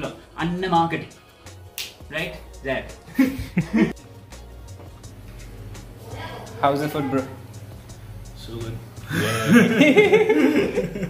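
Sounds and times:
finger snap: 1.6s - 2.1s.

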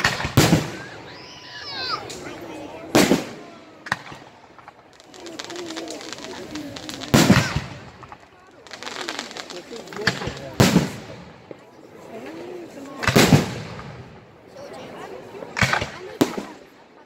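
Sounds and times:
fireworks bangs echoing: 0.0s - 11.6s, 13.0s - 14.3s, 15.6s - 16.7s
fireworks crackling: 0.0s - 11.8s, 12.9s - 14.4s, 15.5s - 16.8s.

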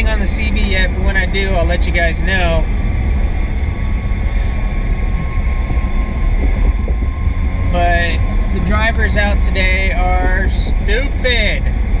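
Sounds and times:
faint steady whines: 0.0s - 12.0s
road and engine noise in car cabin: 0.0s - 12.0s.

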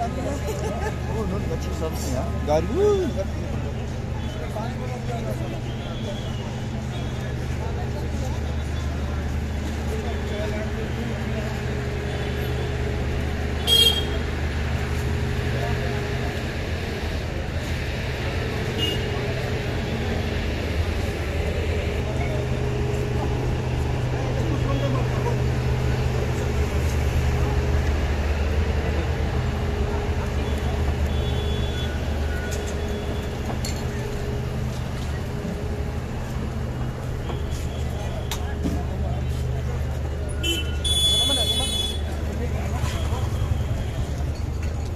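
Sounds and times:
people talking and chattering: 0.0s - 44.9s
traffic hum: 0.0s - 44.9s.

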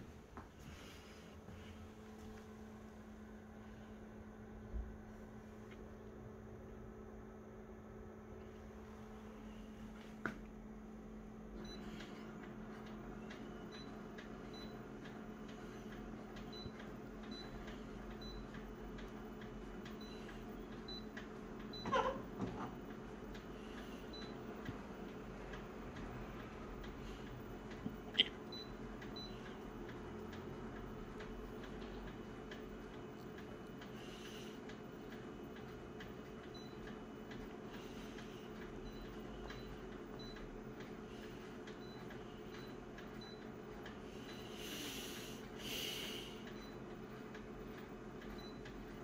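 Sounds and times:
copier humming: 0.0s - 49.0s.

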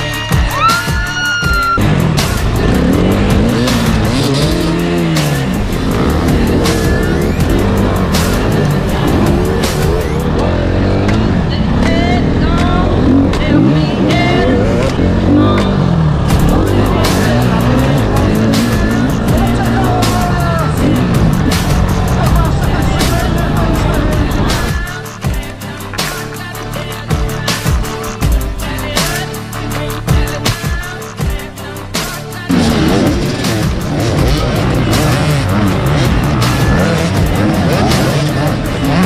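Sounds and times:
music playing: 0.0s - 39.0s
motorcycle engine revving: 1.8s - 25.4s, 27.1s - 39.0s.

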